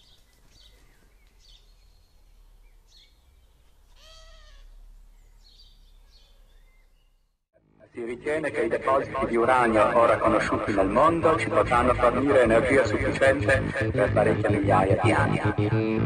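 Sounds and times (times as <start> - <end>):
long pitched bird call: 0.0 - 7.3
bird chirps: 0.0 - 7.4.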